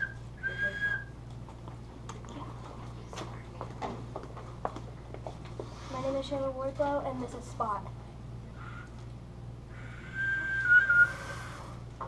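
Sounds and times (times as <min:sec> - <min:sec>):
small whistle blown: 0:00.0 - 0:01.1, 0:09.8 - 0:11.7.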